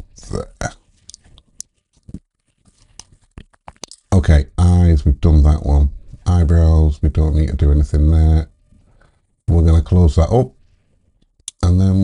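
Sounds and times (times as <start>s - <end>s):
person speaking: 0.0s - 2.2s, 2.8s - 8.5s, 9.5s - 10.6s, 11.5s - 12.0s.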